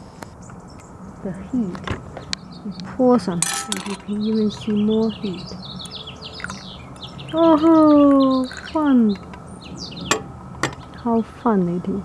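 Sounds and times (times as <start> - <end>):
small birds chirping: 0.2 - 12.0.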